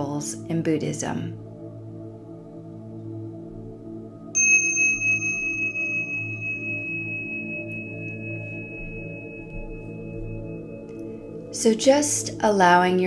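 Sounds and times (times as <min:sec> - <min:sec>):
ambient meditation music drone: 0:01.3 - 0:13.0
high metallic bell tone: 0:04.4 - 0:11.7.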